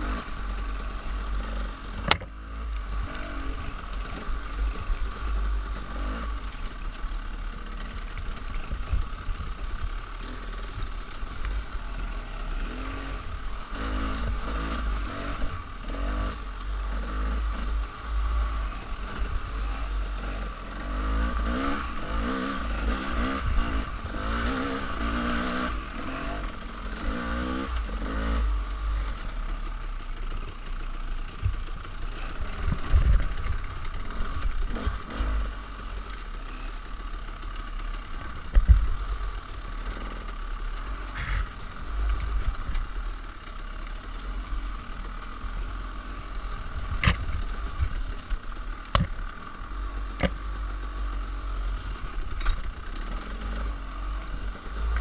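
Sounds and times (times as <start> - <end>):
dirt bike engine: 0.0 - 55.0
bike knocking and rattling over rocks: 31.4 - 35.3, 37.4 - 39.2, 46.6 - 49.5
wind rumble on microphone: 32.6 - 33.7.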